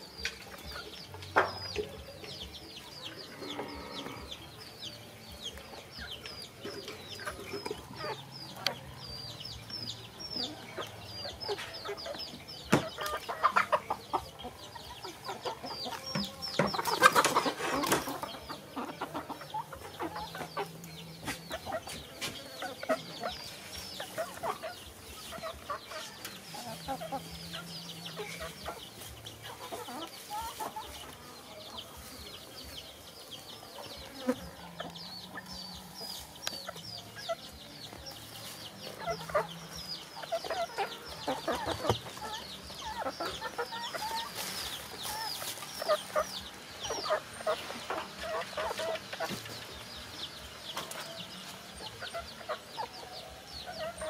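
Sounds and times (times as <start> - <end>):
chickens clucking: 0.0 - 54.0.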